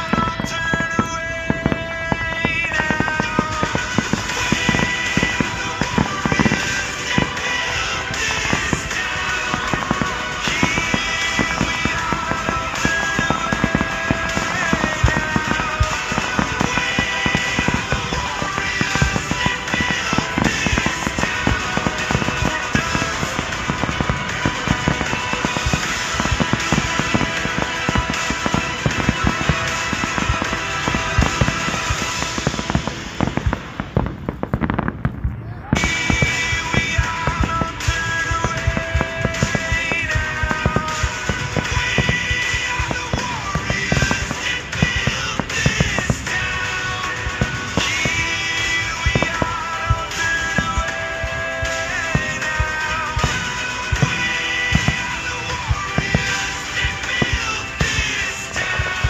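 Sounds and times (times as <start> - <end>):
fireworks bursting and crackling: 0.0 - 59.0
loud music: 0.0 - 59.0.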